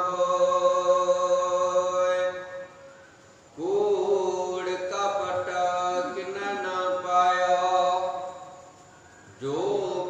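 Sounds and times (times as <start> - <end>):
man chanting held tones: 0.0 - 2.9, 3.6 - 8.6, 9.4 - 10.0.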